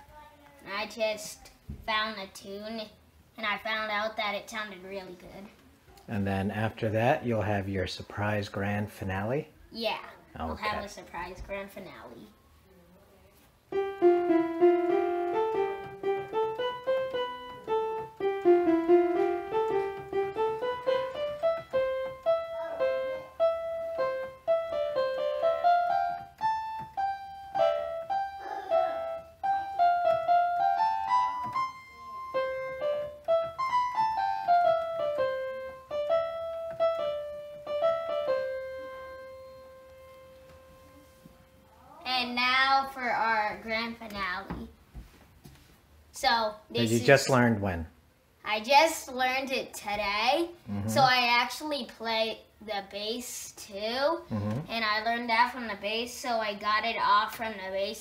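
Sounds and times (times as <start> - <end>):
electronic keyboard melody: 13.7 - 41.7.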